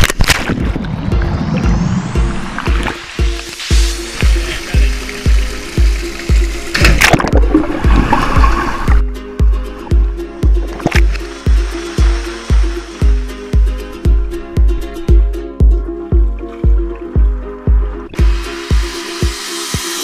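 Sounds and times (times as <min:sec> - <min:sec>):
dense wash of noise: 0:00.6 - 0:05.0, 0:11.2 - 0:13.8
deep kick drum: 0:00.6 - 0:08.6, 0:11.5 - 0:18.9
sustained synth notes: 0:00.6 - 0:09.1
electronic dance music: 0:11.3 - 0:20.0.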